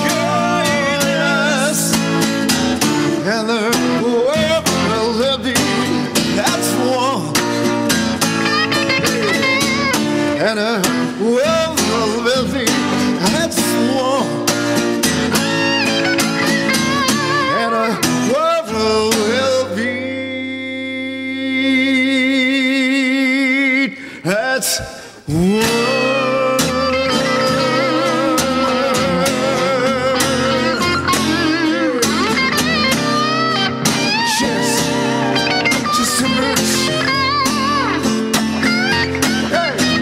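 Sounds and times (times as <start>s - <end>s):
two men singing: 0.0s - 7.7s, 8.4s - 14.6s, 15.4s - 32.7s, 33.7s - 40.0s
acoustic guitar: 0.0s - 40.0s
electric guitar: 0.0s - 40.0s.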